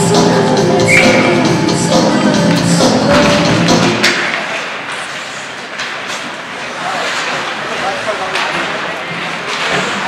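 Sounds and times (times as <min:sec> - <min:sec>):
music over loudspeakers: 0:00.0 - 0:04.2
skates and sticks on ice: 0:04.0 - 0:10.0.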